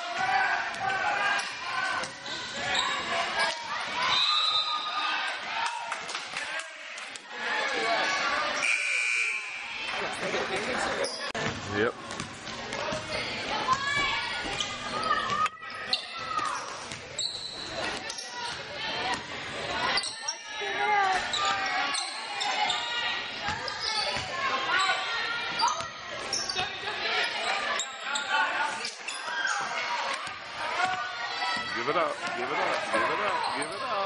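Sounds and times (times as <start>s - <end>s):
spectators' voices and shouts: 0.0s - 34.0s
referee's whistle: 4.1s - 5.0s, 8.6s - 9.8s
basketball bouncing on gym floor: 11.4s - 13.1s.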